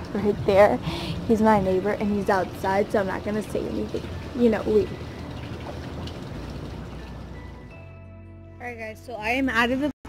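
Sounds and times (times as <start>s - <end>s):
pool water splashing: 0.0s - 7.7s
background music sustained notes: 0.0s - 9.9s.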